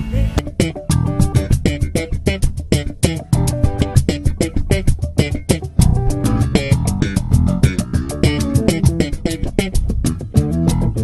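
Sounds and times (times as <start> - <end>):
electric bass guitar line: 0.0 - 11.0
sharp percussive hits: 0.4 - 11.0.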